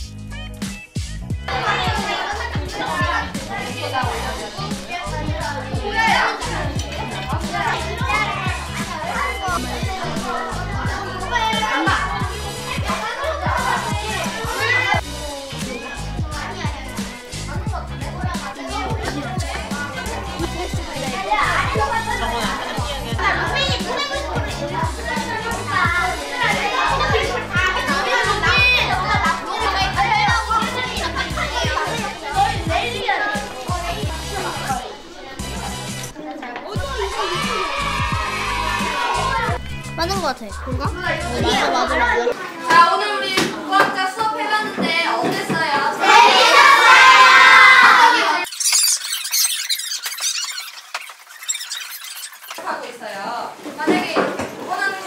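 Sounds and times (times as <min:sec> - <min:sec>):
upbeat music with kick drum: 0:00.0 - 0:34.8, 0:36.8 - 0:42.3
children chattering: 0:01.5 - 0:55.0
squeaky chipmunk voice chattering: 0:48.4 - 0:52.6.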